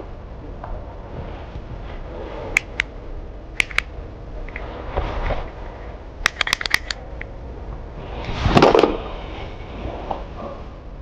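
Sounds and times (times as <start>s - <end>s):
lighter clicking: 3.6s - 3.9s, 6.3s - 7.0s.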